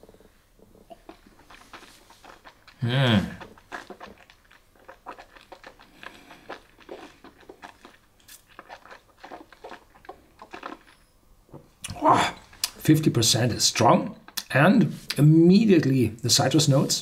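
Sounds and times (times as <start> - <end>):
wet mouth clicks and lip smacks: 3.4 - 11.1.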